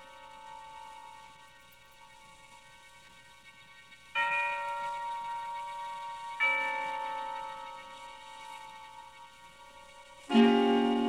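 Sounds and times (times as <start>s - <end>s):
bell-like chime ringing: 4.2s - 11.0s.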